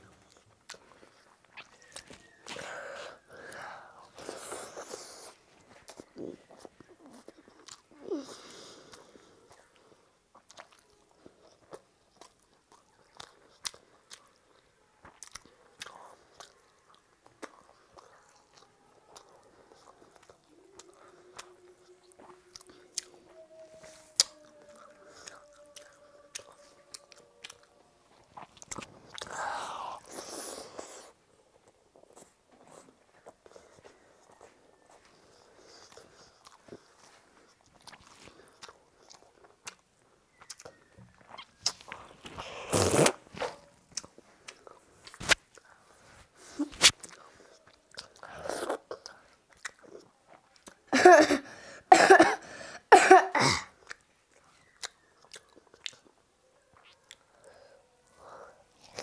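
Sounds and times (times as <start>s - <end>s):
wet chewing and mouth clicks: 0.1s - 50.9s, 53.7s - 59.0s
boy coughing: 50.9s - 53.8s.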